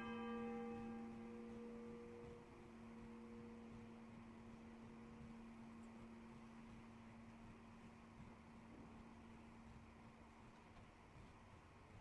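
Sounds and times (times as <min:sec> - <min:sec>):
church bell tolling: 0:00.0 - 0:05.2.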